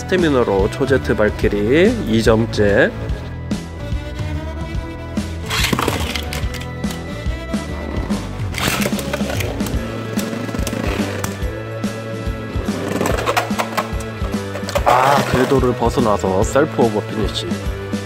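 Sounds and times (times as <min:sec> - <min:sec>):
background music with steady beat: 0:00.0 - 0:18.0
spinning tops whirring and clattering: 0:08.5 - 0:11.4, 0:12.8 - 0:15.7.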